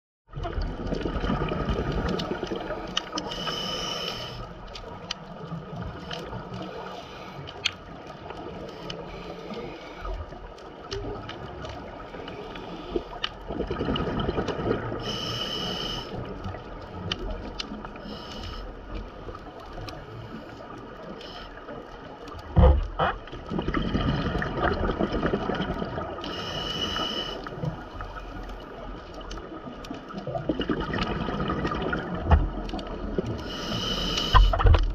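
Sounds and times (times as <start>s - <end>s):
gurgling exhaled bubbles: 0.3s - 6.9s, 10.0s - 21.4s, 22.3s - 34.9s
regulator hissing inhale: 2.6s - 4.6s, 6.2s - 7.6s, 8.7s - 10.2s, 12.2s - 13.2s, 15.0s - 16.3s, 18.0s - 19.0s, 26.2s - 28.0s, 33.4s - 34.6s.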